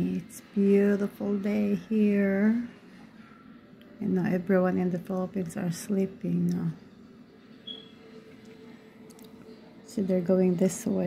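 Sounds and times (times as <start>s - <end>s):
steady low hum: 0.0s - 11.0s
short high-pitched chirp: 7.6s - 8.0s.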